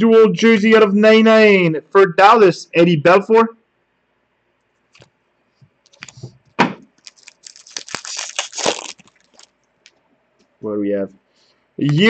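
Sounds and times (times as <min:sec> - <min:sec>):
cards being handled: 0:05.9 - 0:06.3
wrapper tearing and crinkling: 0:06.9 - 0:09.6.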